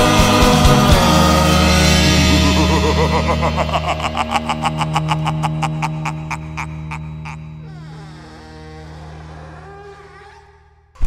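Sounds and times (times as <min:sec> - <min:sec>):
country-rock band playing: 0:00.0 - 0:07.3.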